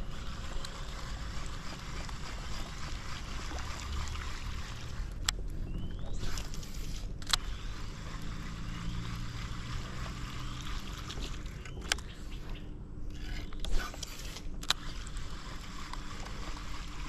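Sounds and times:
moving water: 0.0 - 12.5
wind: 0.0 - 17.0
sharp clicks: 6.1 - 9.3, 11.6 - 12.2, 13.6 - 14.9.

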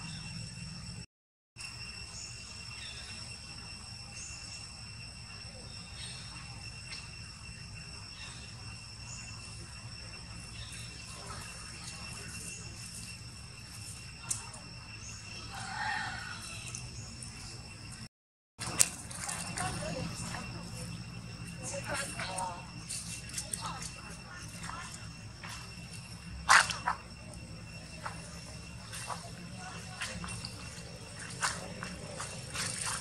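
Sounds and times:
faint chirps: 0.0 - 33.0
high insect drone: 0.0 - 33.0.

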